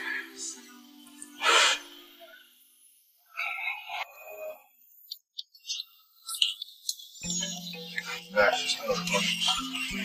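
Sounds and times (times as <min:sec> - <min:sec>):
background music notes: 0:07.2 - 0:10.0.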